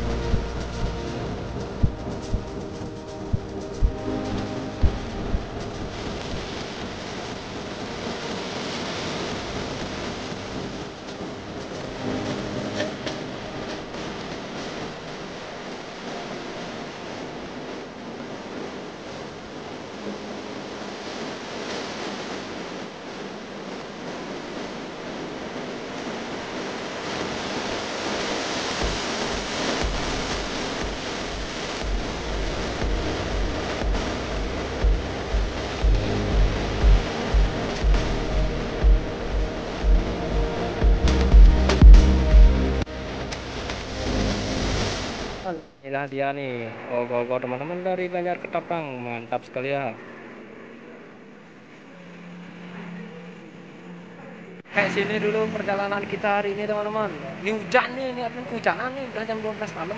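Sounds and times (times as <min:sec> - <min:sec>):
low rumbling bumps: 0:00.0 - 0:07.6, 0:28.8 - 0:45.4
background hiss: 0:00.0 - 0:59.9
faint music: 0:00.0 - 0:59.9.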